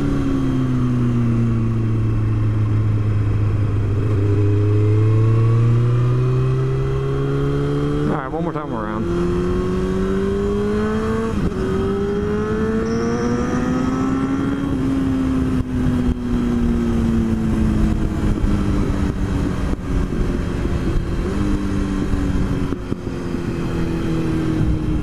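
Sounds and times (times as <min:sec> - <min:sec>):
motorcycle engine with gear changes: 0:00.0 - 0:25.0
wind rush: 0:09.0 - 0:25.0.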